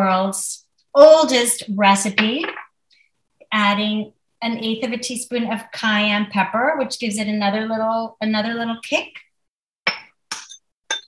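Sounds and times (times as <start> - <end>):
clinks of kitchen items: 9.9 - 11.0.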